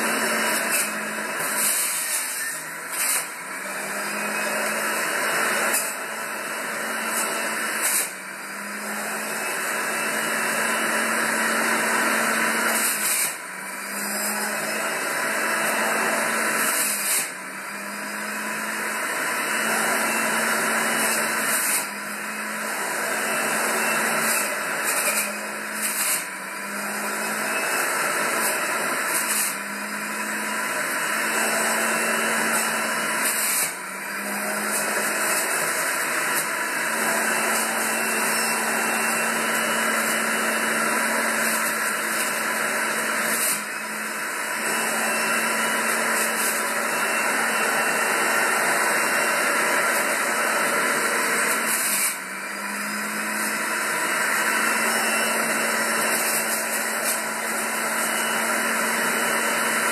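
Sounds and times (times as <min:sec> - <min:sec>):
juicer motor whirring: 0:00.0 - 0:59.9.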